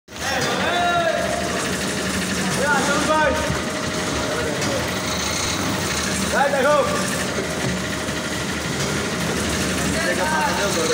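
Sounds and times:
bakery machinery humming: 0:00.1 - 0:10.9.

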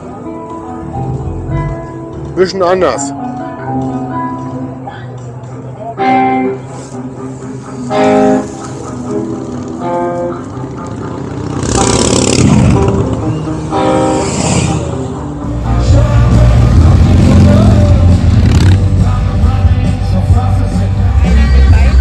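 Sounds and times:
live band music: 0:06.0 - 0:20.2
motorcycle engine: 0:07.4 - 0:20.1.

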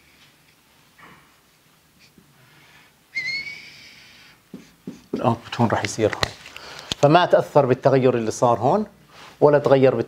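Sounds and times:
marker squeaking on whiteboard: 0:03.2 - 0:05.3.

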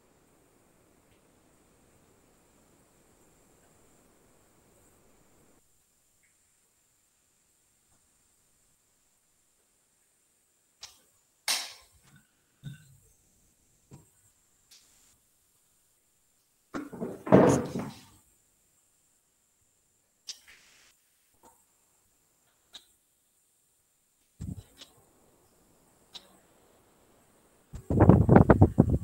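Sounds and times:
faint hiss: 0:00.0 - 0:29.0
knocks and bumps near microphone: 0:16.8 - 0:18.1.

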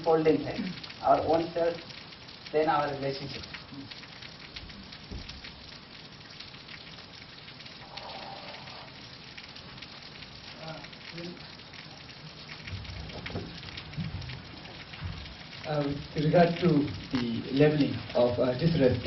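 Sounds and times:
crackling hiss with clicks: 0:00.0 - 0:19.0.

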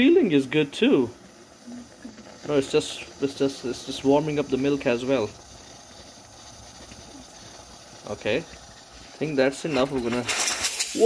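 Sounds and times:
steam wand hissing in milk: 0:00.1 - 0:11.0.

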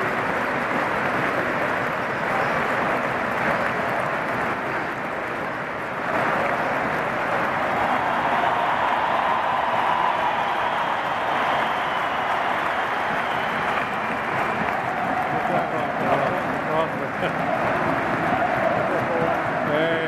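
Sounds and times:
stadium crowd cheering and clapping: 0:00.0 - 0:20.0.

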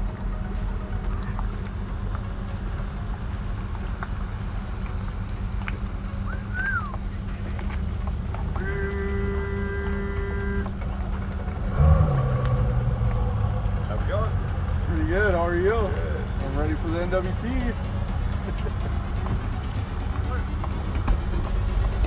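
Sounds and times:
outboard motors idling: 0:00.0 - 0:22.0.

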